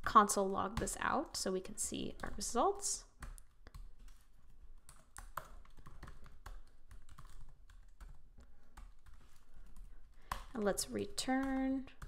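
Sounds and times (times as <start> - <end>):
computer keyboard typing: 0.6 - 12.0.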